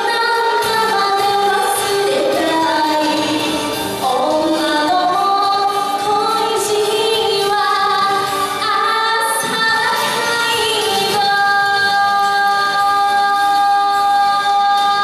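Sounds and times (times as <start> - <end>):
musical accompaniment: 0.0 - 15.0
woman singing into microphone: 0.0 - 15.0.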